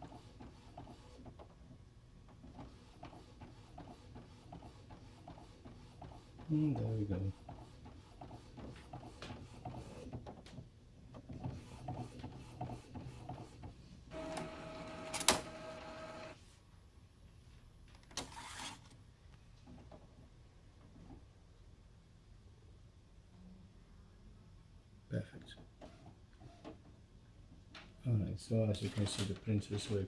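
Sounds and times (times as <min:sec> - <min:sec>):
printer clicking and whirring: 0:11.2 - 0:16.4
motor whine: 0:14.1 - 0:16.4.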